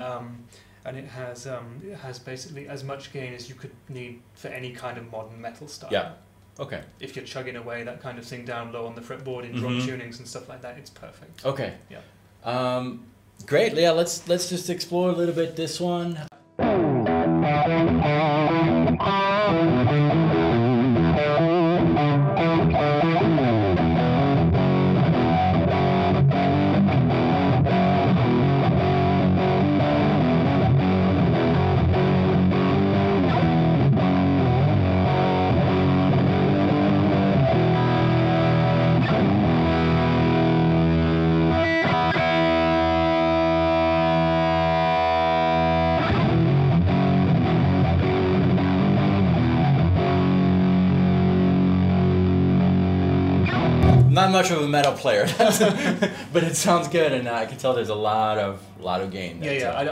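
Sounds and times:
distorted electric guitar riffs: 16.4 - 54.7.

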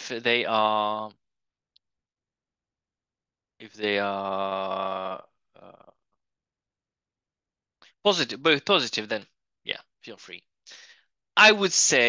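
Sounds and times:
person speaking: 0.0 - 1.1, 3.6 - 5.8, 11.4 - 12.0.

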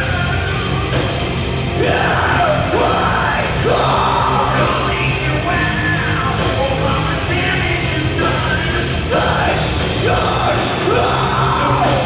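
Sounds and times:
bass guitar: 0.0 - 12.0
electric guitars: 0.0 - 12.0
man singing: 0.0 - 12.0.

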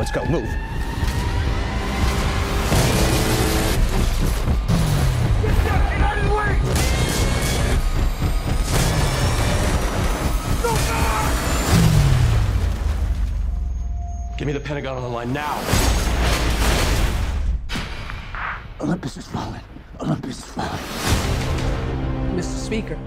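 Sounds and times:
dramatic music: 0.0 - 18.8, 20.7 - 23.0
battle sound effects: 1.9 - 13.8.

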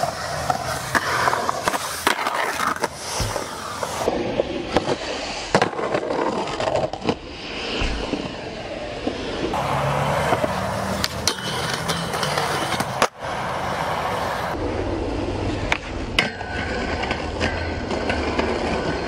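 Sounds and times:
skateboard pops and slaps: 0.0 - 4.1, 4.7 - 8.4
skateboard wheels rolling on concrete: 0.0 - 19.0.

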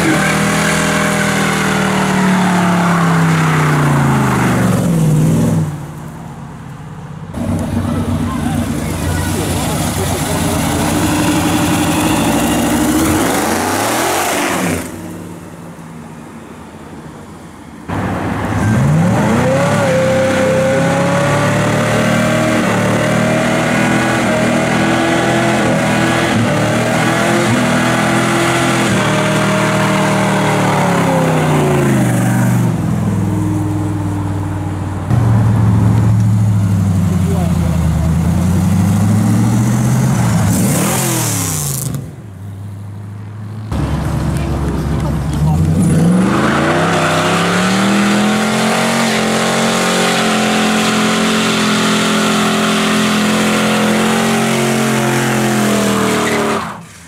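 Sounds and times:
car engines revving hard: 0.0 - 5.9, 7.3 - 15.5, 17.9 - 42.3, 43.5 - 57.0.

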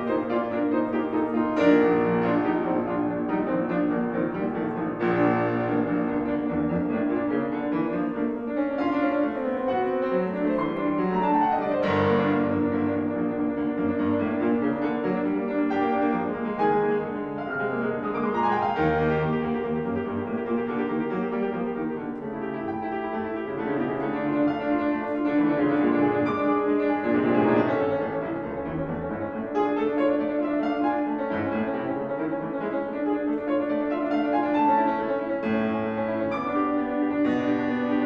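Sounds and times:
solo classical piano piece: 0.0 - 38.0.

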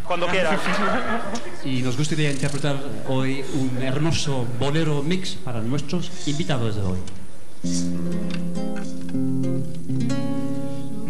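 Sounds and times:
nylon-string guitars playing chords: 7.6 - 11.0.

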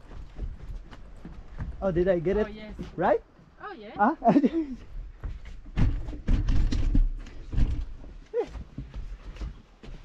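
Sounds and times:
bicycle knocking on wooden planks: 0.0 - 3.1, 4.4 - 10.0.

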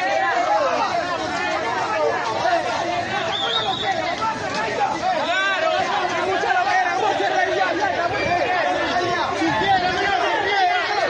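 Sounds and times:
crowd babble: 0.0 - 11.0.

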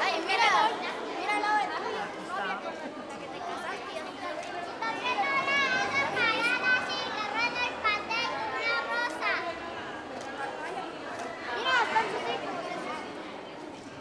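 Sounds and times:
children chattering and calling out: 0.0 - 14.0
voices talking: 0.0 - 14.0.

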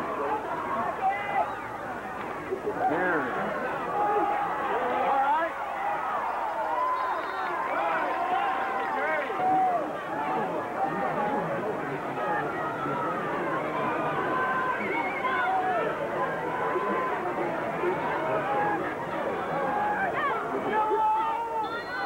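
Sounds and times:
crowd babble: 0.0 - 22.0.

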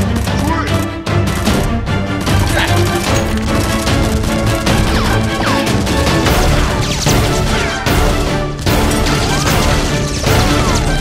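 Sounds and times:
action music: 0.0 - 11.0.

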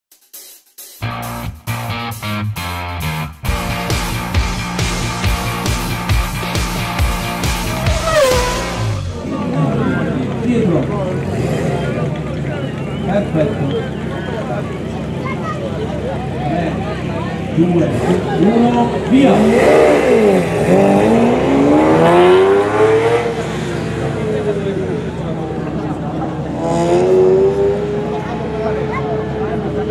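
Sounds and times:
rock music: 0.9 - 9.3
car engine idling: 3.4 - 21.0
people talking: 8.8 - 21.9, 23.6 - 29.9.

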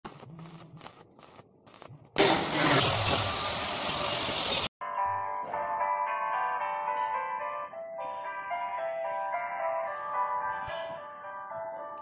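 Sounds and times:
background music: 4.8 - 12.0.

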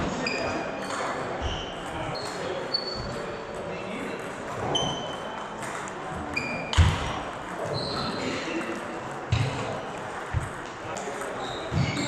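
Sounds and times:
shoes squeaking on floor: 0.0 - 3.7, 4.5 - 8.6, 10.4 - 12.0.

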